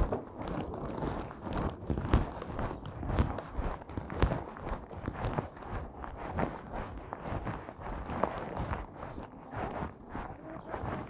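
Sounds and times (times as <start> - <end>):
rustling: 0.0 - 11.0.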